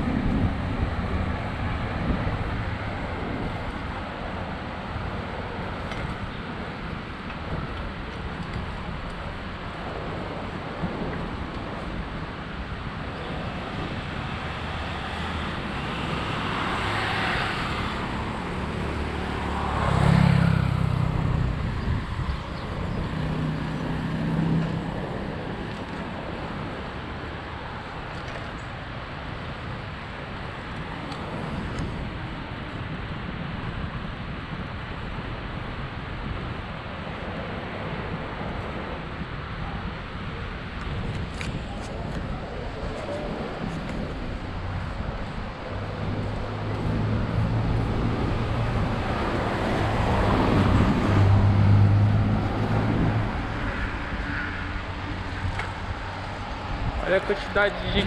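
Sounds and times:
cars passing: 0.0 - 58.0
wind on microphone: 0.0 - 58.0.

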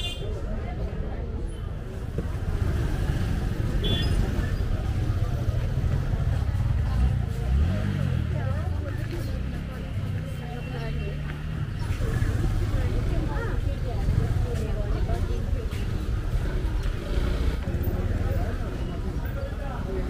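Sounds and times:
indistinct chatter of passers-by: 0.0 - 20.0
low rumble of motor traffic: 0.0 - 20.0.

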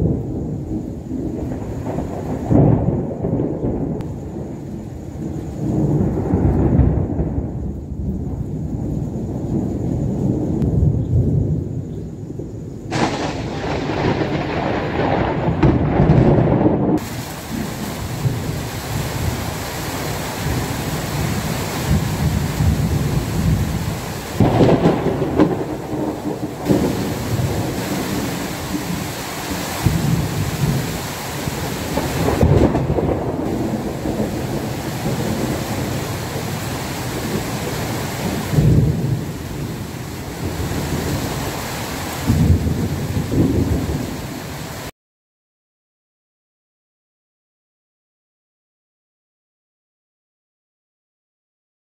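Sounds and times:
steady rain: 0.0 - 44.9
thunder rumbling: 0.0 - 44.9.

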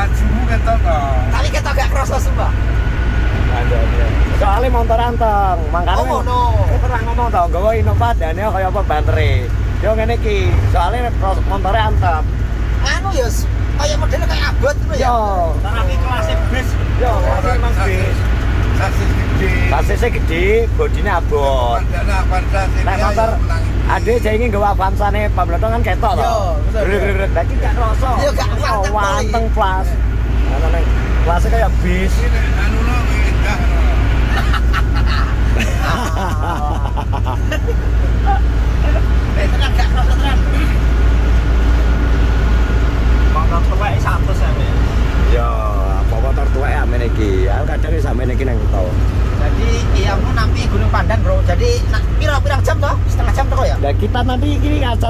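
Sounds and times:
people talking: 0.0 - 2.7, 3.4 - 40.9, 43.2 - 55.0
car engine and road noise: 0.0 - 55.0
vehicle rumble from inside: 0.0 - 55.0.

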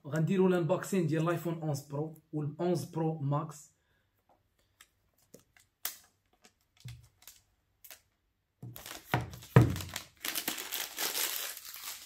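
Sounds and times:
plastic wrap crinkling: 5.2 - 12.0.

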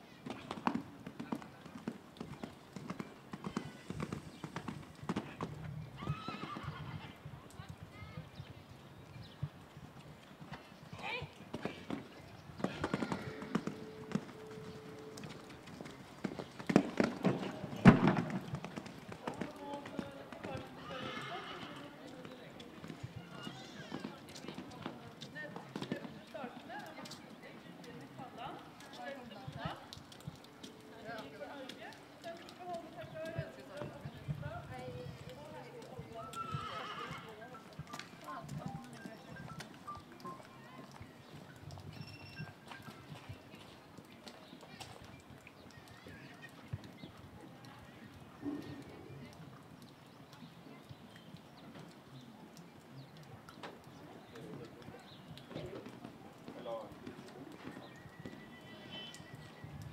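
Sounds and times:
horse hoofbeats on sand: 0.2 - 6.7, 9.2 - 49.1
faint voices: 10.5 - 59.9.

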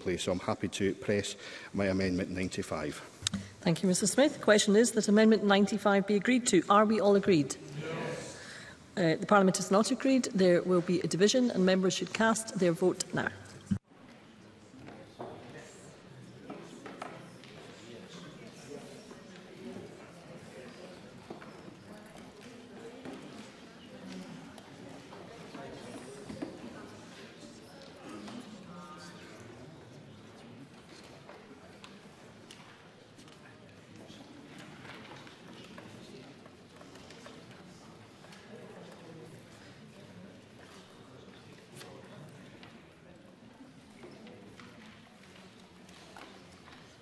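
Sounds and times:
murmur of voices: 0.0 - 47.0.

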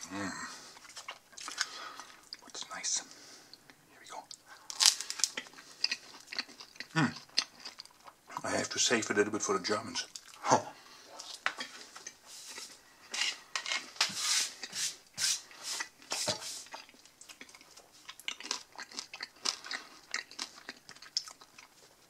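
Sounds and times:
chewing crusty bread: 0.6 - 2.6, 4.2 - 8.8, 10.0 - 10.4, 15.8 - 22.0.

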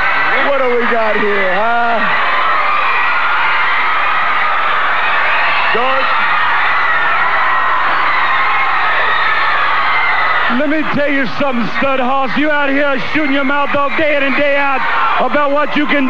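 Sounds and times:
crowd cheering and shouting: 0.0 - 16.0.

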